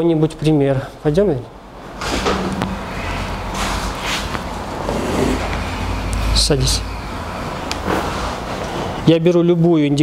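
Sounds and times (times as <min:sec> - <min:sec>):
low room rumble: 0:00.1 - 0:09.0.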